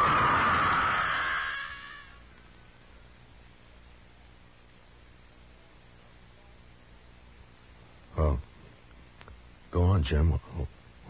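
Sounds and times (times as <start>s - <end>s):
woman screaming: 0.0s - 2.2s.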